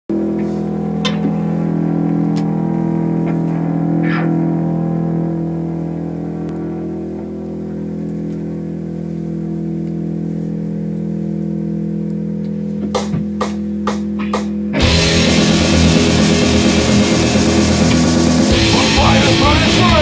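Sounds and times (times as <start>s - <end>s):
distorted electric guitar chord: 0.1s - 20.0s.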